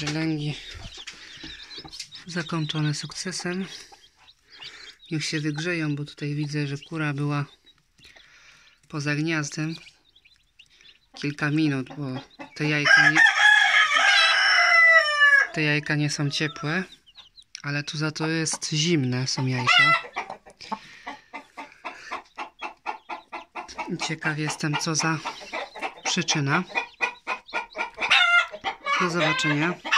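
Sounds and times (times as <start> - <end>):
chickens clucking: 0.0 - 29.9
rooster crowing: 12.8 - 15.6, 28.1 - 29.2.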